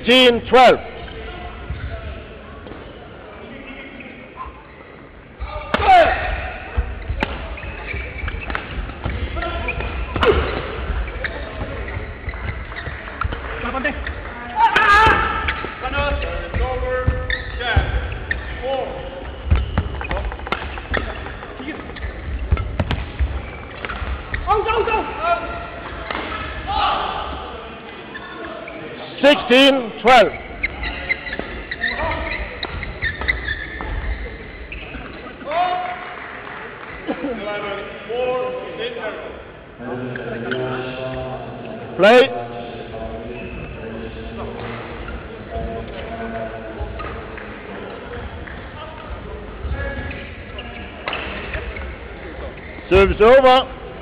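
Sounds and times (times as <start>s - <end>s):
racket striking shuttlecock: 19.5s - 21.3s.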